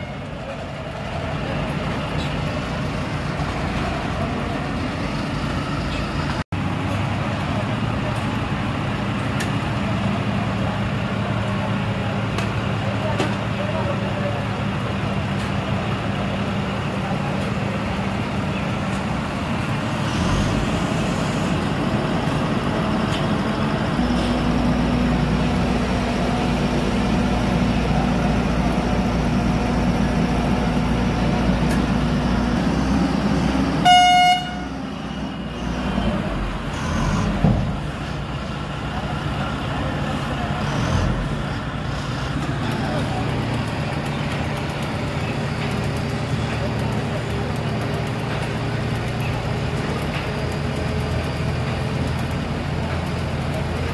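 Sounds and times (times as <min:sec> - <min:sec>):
heavy machinery engines running: 0:00.0 - 0:53.9
vehicle horn toot: 0:33.8 - 0:34.8.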